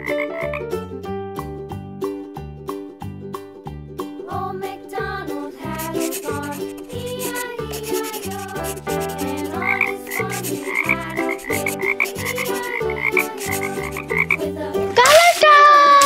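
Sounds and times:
cartoon frog croak: 0.0 - 0.6, 5.9 - 14.4
bouncy children's music: 0.0 - 16.0.

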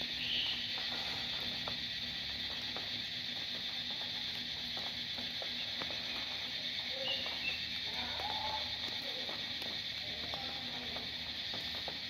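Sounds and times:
faint ticks: 0.0 - 12.0
high-pitched insect buzz: 0.0 - 12.0.

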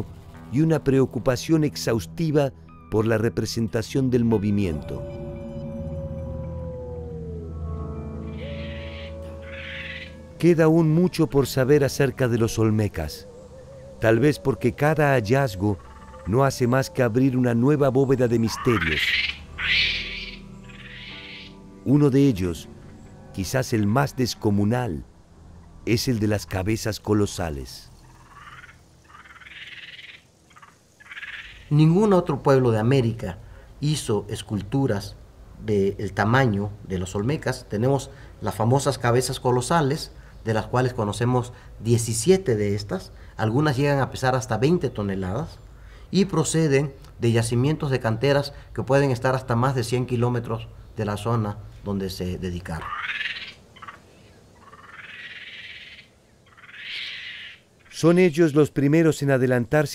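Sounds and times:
animal pulsed trilling call: 4.6 - 24.5, 28.0 - 31.7, 54.6 - 57.9.

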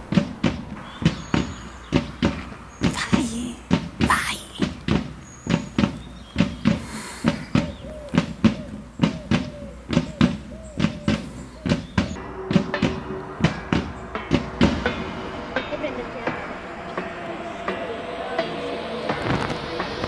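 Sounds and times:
marching drums: 0.0 - 20.0.

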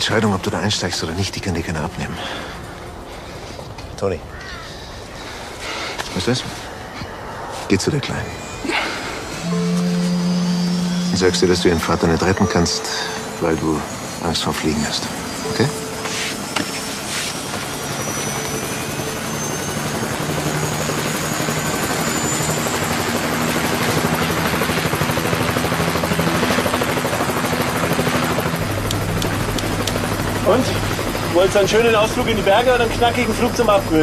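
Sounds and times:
helicopter turbine and rotor: 0.0 - 6.9, 7.7 - 34.0
faint rising whine: 8.1 - 22.7
deep low hum: 9.4 - 12.5.

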